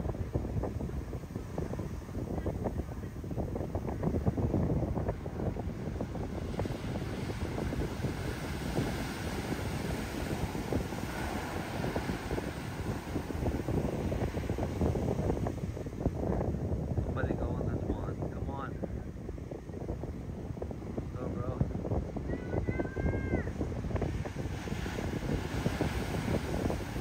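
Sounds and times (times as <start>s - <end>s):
wave crashing: 0.0s - 17.7s, 22.0s - 27.0s
heavy surf rumble: 0.0s - 27.0s
wind buffeting microphone: 0.0s - 27.0s.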